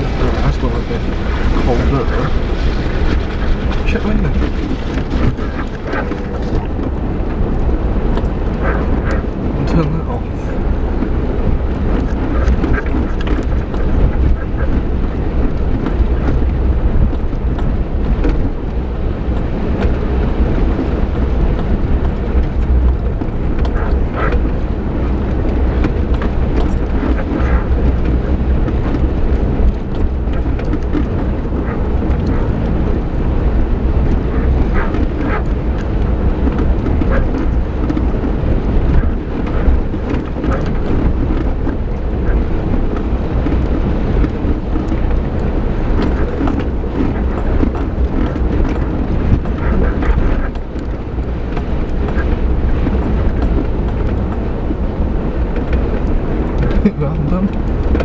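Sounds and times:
car engine and road rumble: 0.0 - 58.0
vehicle knocks and rattles: 10.6 - 58.0.

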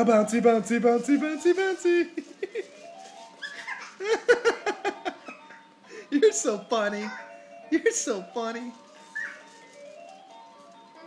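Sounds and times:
electronic toy jingle: 4.4 - 11.0.

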